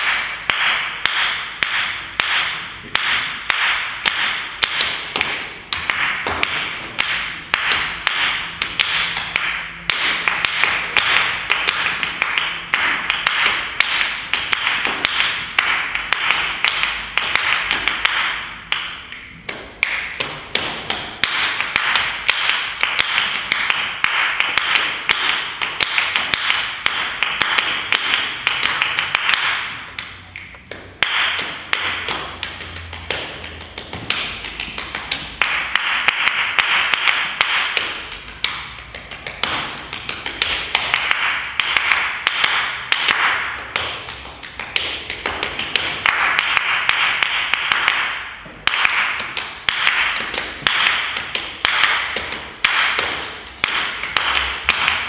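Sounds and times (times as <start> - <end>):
group clapping a rhythm: 0.0 - 55.0.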